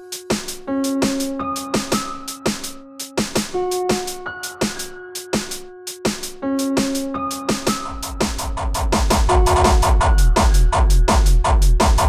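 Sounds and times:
fast drum hits: 0.2 - 12.0
heavy bass kick drum: 7.9 - 12.0.

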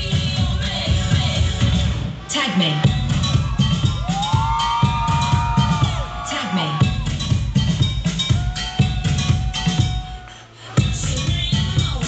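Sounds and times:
loud dance-pop music: 0.0 - 12.0.

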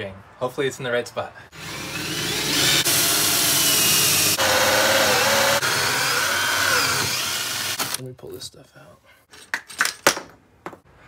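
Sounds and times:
drill hole saw cutting wood: 1.6 - 8.0.

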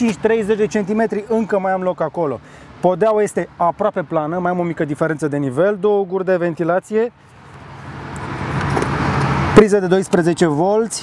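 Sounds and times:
road vehicle approaching: 0.0 - 11.0.

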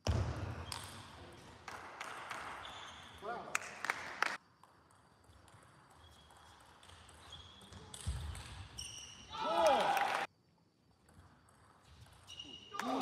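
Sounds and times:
player shouting: 9.3 - 10.3.

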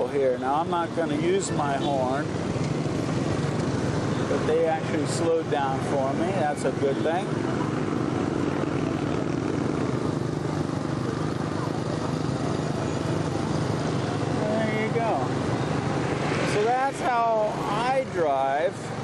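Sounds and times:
motorbike engine and road noise: 0.0 - 19.0.

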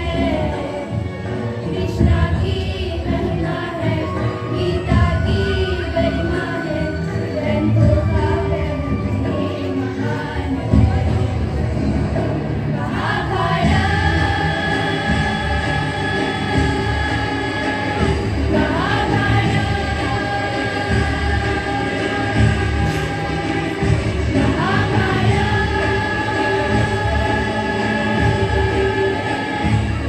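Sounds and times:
girls singing in chorus: 0.0 - 11.7, 12.6 - 30.0.

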